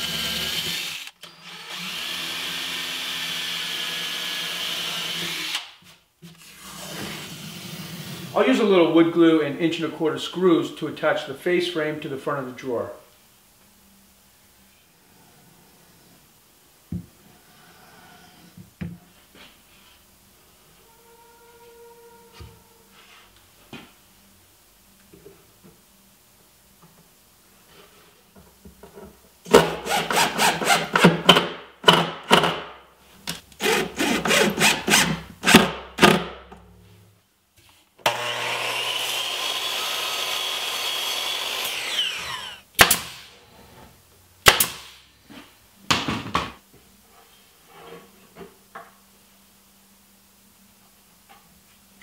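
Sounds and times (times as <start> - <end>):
drill whirring: 0.0 - 5.8, 29.8 - 31.1, 33.6 - 35.7, 38.0 - 43.3
table saw cutting wood: 29.5 - 31.2, 33.6 - 35.8, 38.0 - 42.6.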